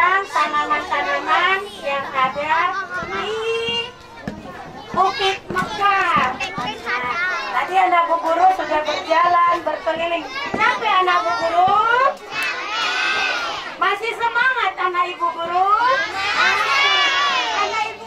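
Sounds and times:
young children talking and calling out: 0:00.0 - 0:18.0.

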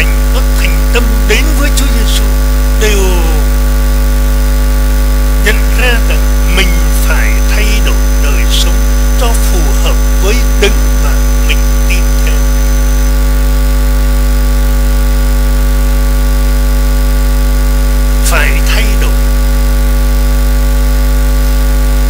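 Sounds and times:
faint voice: 0:00.0 - 0:03.6, 0:05.4 - 0:12.8, 0:18.2 - 0:19.3
electrical mains hum: 0:00.0 - 0:22.0.

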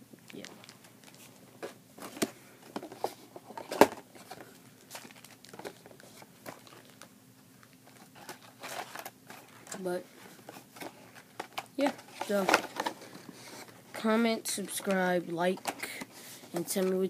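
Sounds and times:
plastic foil packet crinkling: 0:04.2 - 0:09.8.

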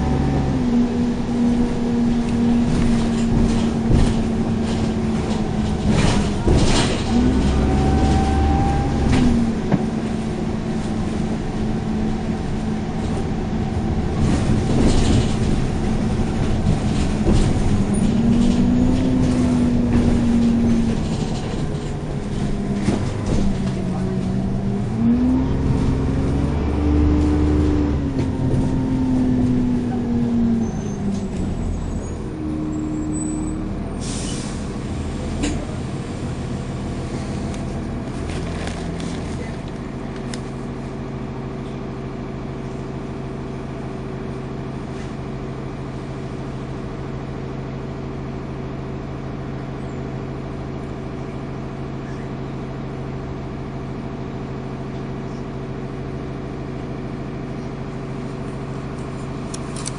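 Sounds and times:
bus diesel engine: 0:00.0 - 0:59.9
brief air hiss: 0:34.0 - 0:34.7.

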